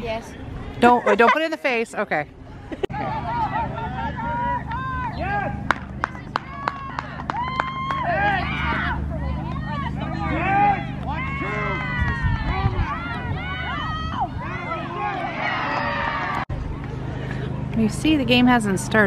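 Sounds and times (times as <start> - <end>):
kids chattering and calling: 0.0 - 1.9, 2.9 - 17.8.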